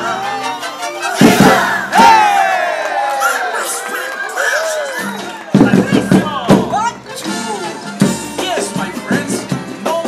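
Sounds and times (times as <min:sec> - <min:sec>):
performers shouting: 0:00.0 - 0:06.4
crowd voices: 0:00.0 - 0:10.0
drum strikes: 0:01.2 - 0:02.3, 0:05.5 - 0:10.0.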